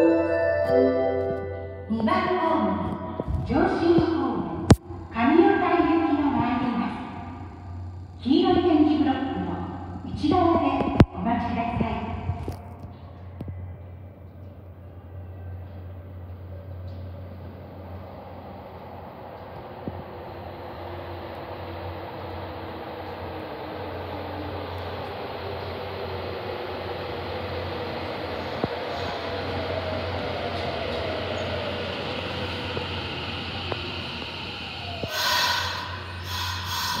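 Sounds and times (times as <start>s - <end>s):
subway train rumble: 0.0s - 37.0s
train motor whine: 19.4s - 37.0s
high-pitched train screech: 35.0s - 37.0s.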